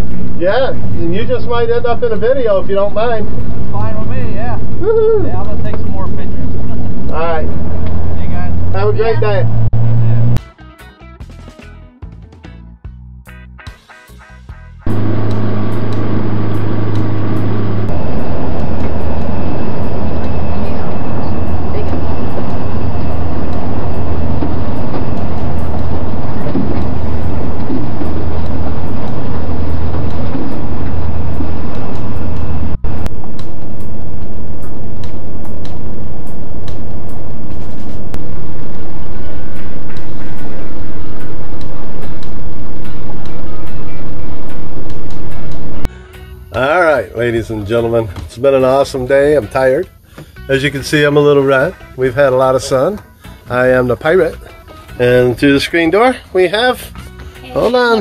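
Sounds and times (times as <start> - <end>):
outboard motor droning: 14.9 - 33.1.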